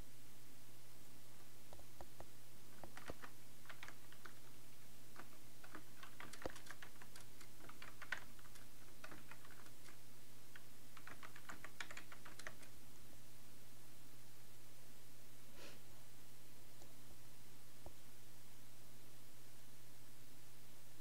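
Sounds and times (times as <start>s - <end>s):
steady low hum: 0.0s - 21.0s
computer keyboard typing: 2.7s - 12.8s.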